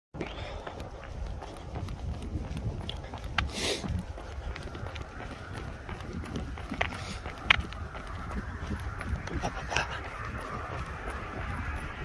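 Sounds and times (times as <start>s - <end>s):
footfalls on paved path: 0.2s - 12.0s
wind rumble on microphone: 0.2s - 12.0s.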